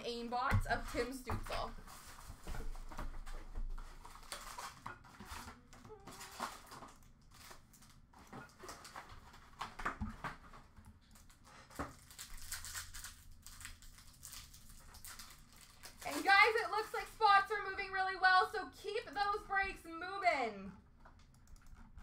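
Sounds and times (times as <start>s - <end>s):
foil wrappers crinkling and tearing: 3.2s - 9.8s, 11.1s - 17.6s.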